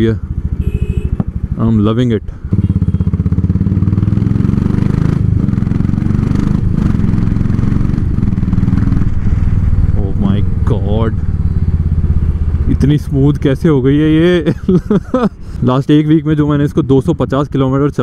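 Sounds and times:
motorcycle engine cruising: 0.0s - 15.4s.

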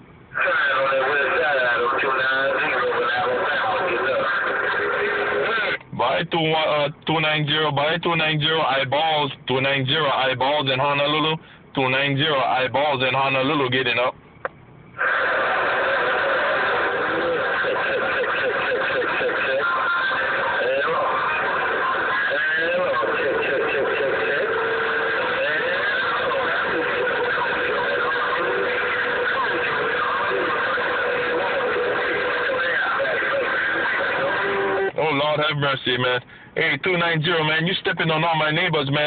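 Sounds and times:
garbled radio transmission: 0.0s - 39.0s.

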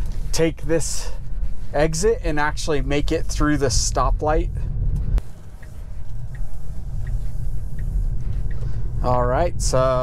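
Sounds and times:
road and tyre rumble inside car: 0.0s - 10.0s.

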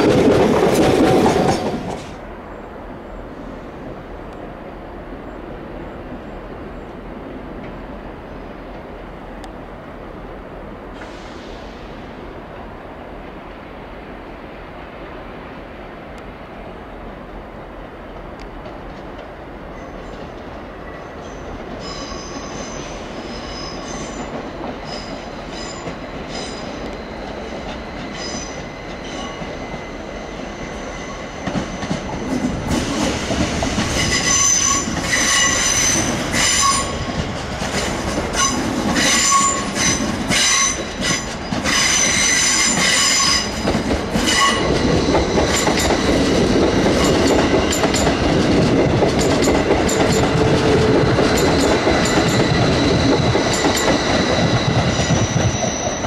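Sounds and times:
rumble of wheels on rail: 0.0s - 56.0s
train wheel squeals: 19.7s - 48.3s, 49.2s - 56.0s.

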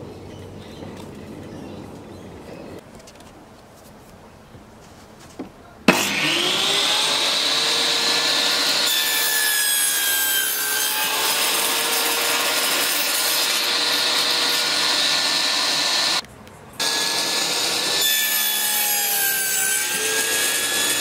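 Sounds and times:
circular saw cutting plywood: 5.9s - 16.2s, 16.8s - 21.0s.

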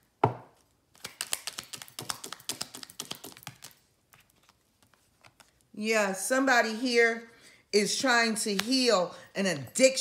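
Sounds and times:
cards clicking in hands: 0.9s - 3.8s.

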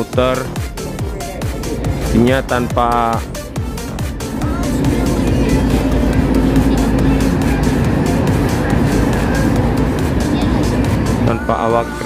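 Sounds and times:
background music with steady beat: 0.0s - 12.0s
loud low rumble: 0.0s - 12.0s.

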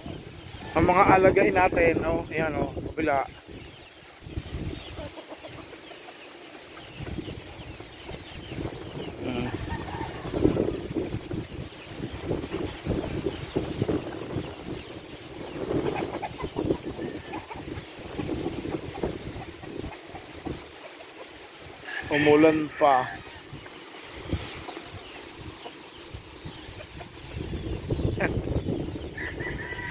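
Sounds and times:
wind rumble on microphone: 0.0s - 5.6s, 6.8s - 20.7s, 21.6s - 29.9s
chickens clucking: 0.0s - 29.9s.

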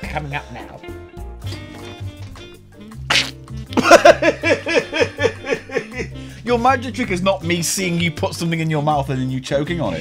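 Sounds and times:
man coughing and spluttering: 3.0s - 6.2s
man laughing hard: 3.7s - 6.3s.

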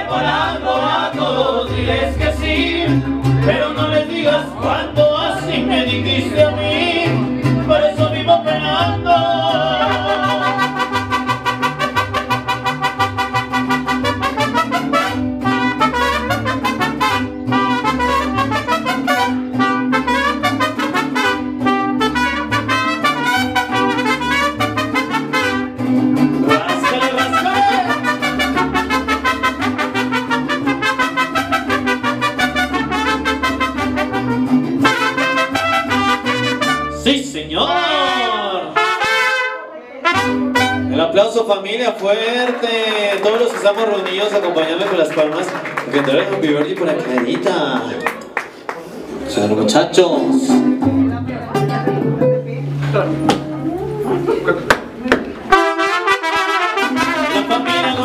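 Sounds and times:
strummed guitars: 0.0s - 58.0s
trumpets playing melody: 9.2s - 41.2s, 55.5s - 58.0s.

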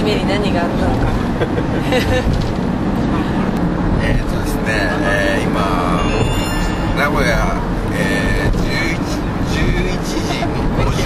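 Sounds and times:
engine and road rumble: 0.0s - 11.0s.

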